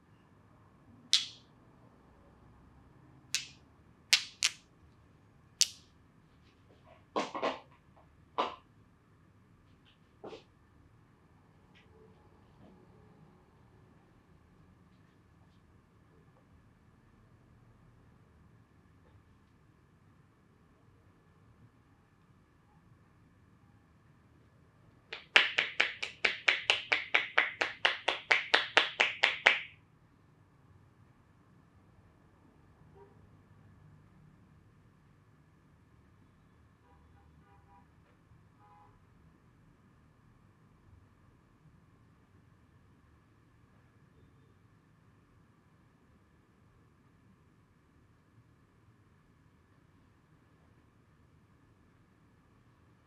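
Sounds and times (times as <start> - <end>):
fingers snapping: 1.2 - 1.4, 4.2 - 4.6
hands clapping on head: 1.2 - 1.4, 4.2 - 4.6, 25.1 - 29.8.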